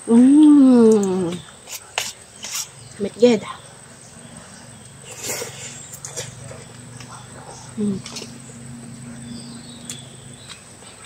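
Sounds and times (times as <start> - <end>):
steady low hum: 0.0 - 11.0
person chewing food: 4.7 - 11.0.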